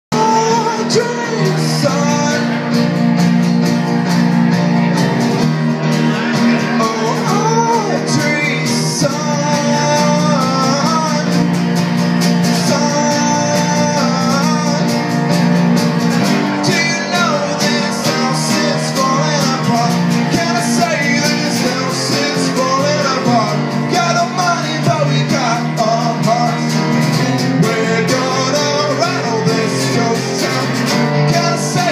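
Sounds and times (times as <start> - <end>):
man singing: 0.1 - 3.0, 5.8 - 31.9
acoustic guitar: 0.1 - 31.9
electric keyboard: 0.1 - 31.9.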